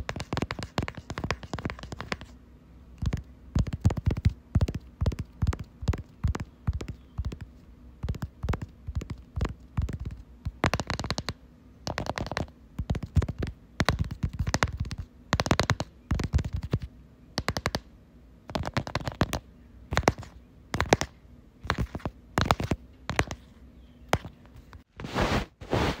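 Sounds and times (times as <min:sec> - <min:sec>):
asmr tapping clicks: 0:03.0 - 0:17.9, 0:18.5 - 0:23.4.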